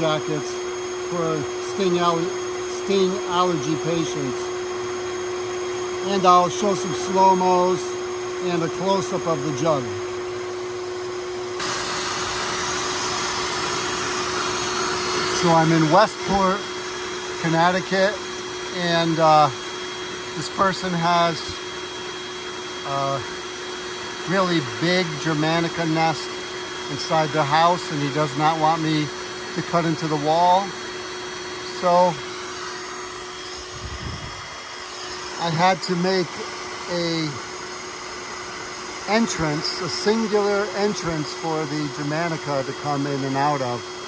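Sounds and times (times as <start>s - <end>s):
vacuum running: 0.0s - 44.0s.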